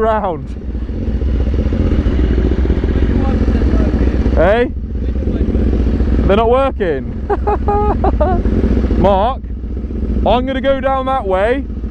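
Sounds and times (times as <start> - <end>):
motorcycle engine rumbling: 0.0 - 11.9.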